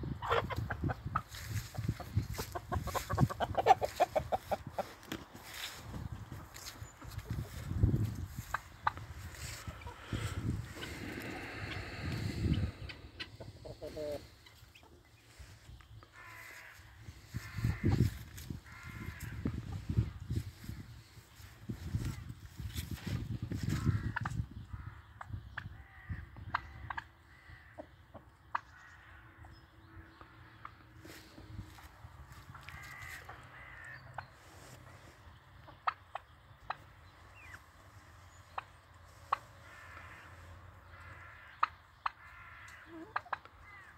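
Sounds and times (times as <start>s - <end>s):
chickens clucking: 0.0s - 24.5s, 26.4s - 29.5s, 30.5s - 43.6s
drawn-out chicken calls: 0.0s - 24.5s, 30.1s - 43.9s.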